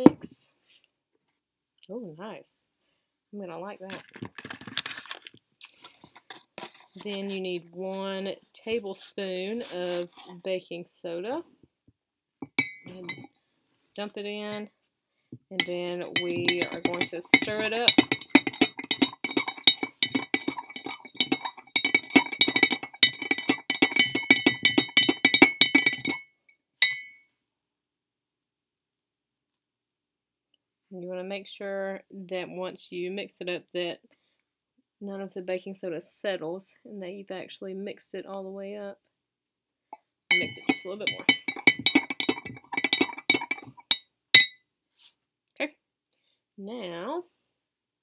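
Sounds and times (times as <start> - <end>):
metal spoon clinking in glass jar: 12.4 - 13.3, 15.6 - 26.2, 26.8 - 27.2, 40.3 - 44.6.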